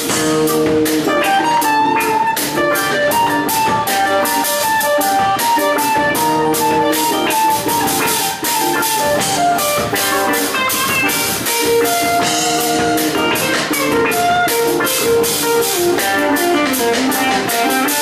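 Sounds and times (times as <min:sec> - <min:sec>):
drum kit steady beat: 0:00.0 - 0:18.0
guitar: 0:00.0 - 0:18.0.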